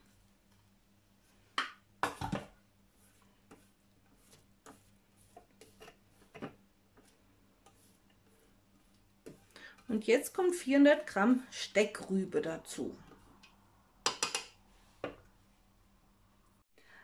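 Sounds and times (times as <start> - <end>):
spatula scraping metal bowl: 3.5 - 8.6.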